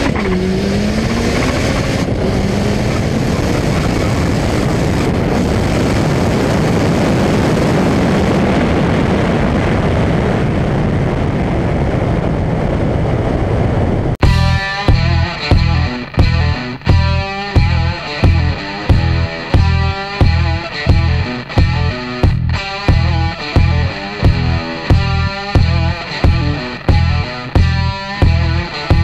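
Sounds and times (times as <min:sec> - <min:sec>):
car engine accelerating hard: 0:00.0 - 0:07.9, 0:14.2 - 0:29.0
wind noise: 0:00.0 - 0:29.0.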